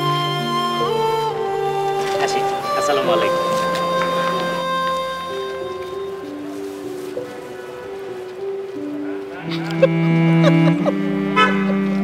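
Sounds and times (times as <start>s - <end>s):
low bowed strings: 0.0s - 12.0s.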